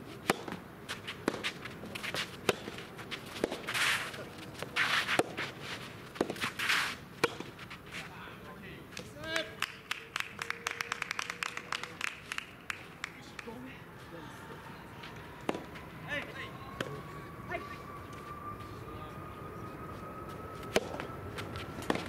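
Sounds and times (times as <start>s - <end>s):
tennis ball struck by rackets: 0.2s - 0.6s, 1.2s - 3.8s, 4.8s - 5.4s, 6.1s - 6.6s, 7.2s - 7.5s, 15.4s - 15.8s, 20.7s - 21.1s, 21.8s - 22.0s.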